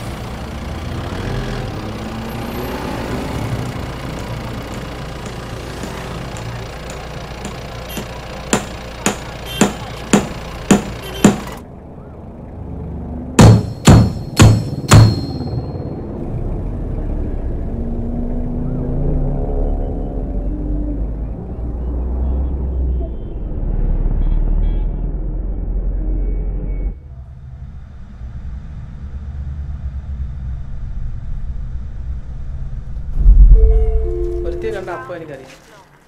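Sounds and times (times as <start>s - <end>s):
car rumble in traffic: 0.0s - 35.1s
heavy thump: 13.4s - 15.6s.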